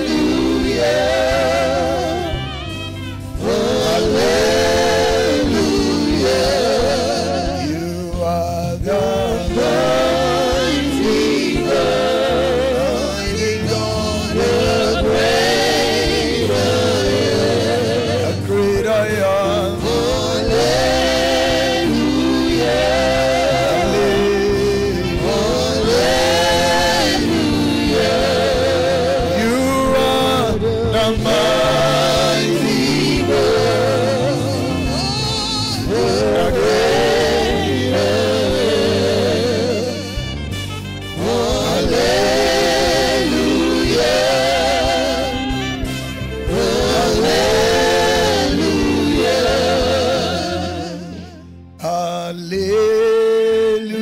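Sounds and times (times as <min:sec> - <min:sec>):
man singing gospel song: 0:00.0 - 0:02.6, 0:03.3 - 0:40.3, 0:41.0 - 0:54.0
musical accompaniment: 0:00.0 - 0:54.0
worship band with bass and keyboard: 0:00.0 - 0:54.0
man singing lead: 0:05.2 - 0:15.3, 0:28.6 - 0:38.0.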